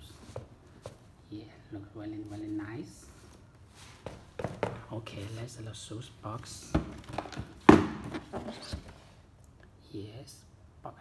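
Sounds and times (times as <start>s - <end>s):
cardboard knocks and scrapes: 3.9s - 4.8s, 6.6s - 9.0s
box thumping on wooden floor: 4.1s - 4.8s, 6.6s - 9.0s.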